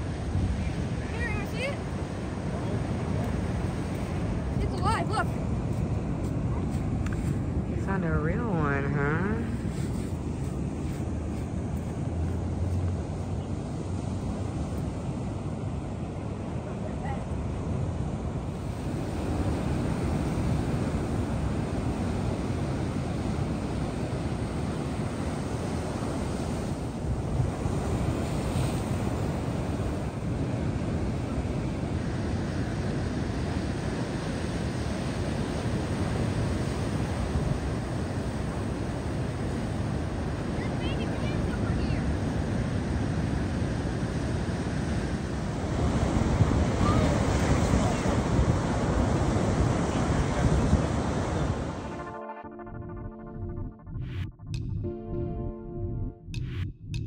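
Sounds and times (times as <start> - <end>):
wind buffeting microphone: 0.0 - 51.8
surf breaking on rocky shore: 13.7 - 52.0.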